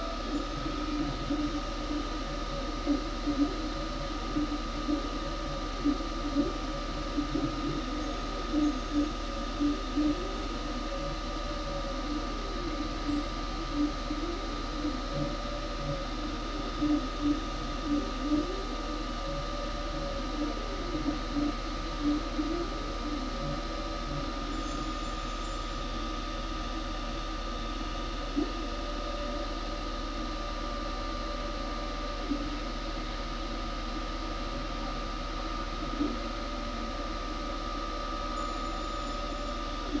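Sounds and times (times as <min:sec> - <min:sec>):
laser cutter motors whining: 0:00.0 - 0:40.0.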